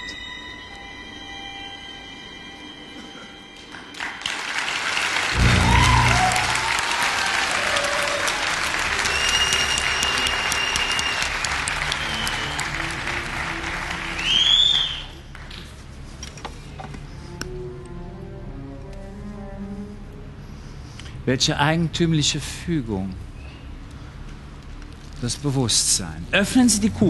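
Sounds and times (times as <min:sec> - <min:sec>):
background music: 0:00.0 - 0:14.7, 0:17.0 - 0:21.3
audience applause: 0:03.8 - 0:15.5.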